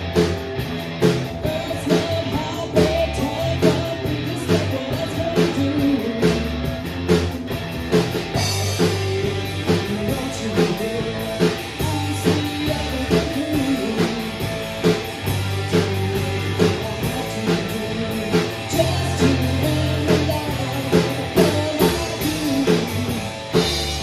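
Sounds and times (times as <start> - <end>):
bass guitar: 0.0 - 24.0
drum kit beat: 0.0 - 24.0
electric guitars: 0.0 - 24.0.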